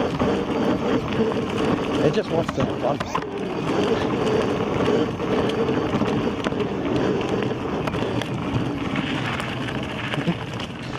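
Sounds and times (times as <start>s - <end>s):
grit clicking under tyre: 0.0s - 10.9s
tyre noise on dirt trail: 0.0s - 10.9s.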